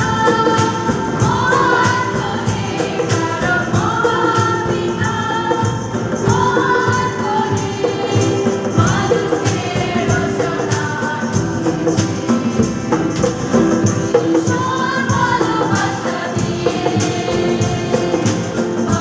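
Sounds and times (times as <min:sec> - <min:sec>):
hand drums: 0:00.0 - 0:19.0
jingling percussion hits: 0:00.0 - 0:19.0
keyboard: 0:00.0 - 0:19.0
strummed acoustic guitars: 0:00.0 - 0:19.0
women singing a hymn: 0:00.0 - 0:19.0.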